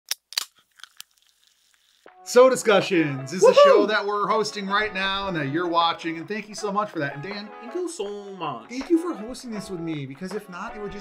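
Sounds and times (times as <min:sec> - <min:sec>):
sharp crunchy clicks: 0:00.1 - 0:01.3.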